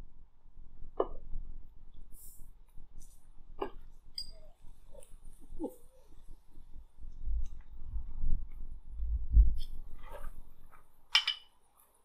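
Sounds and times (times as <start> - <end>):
glass bottles clinking: 11.1 - 11.5.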